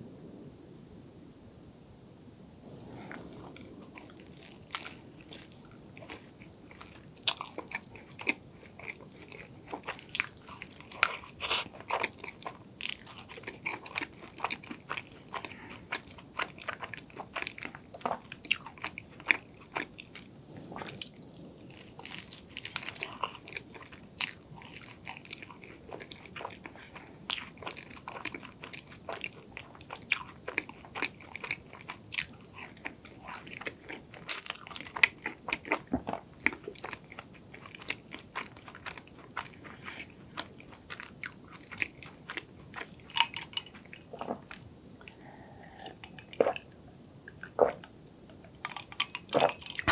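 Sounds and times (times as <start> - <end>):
crunching crisp pastry: 2.6 - 45.3, 48.3 - 49.9
soft chewing: 2.6 - 49.9.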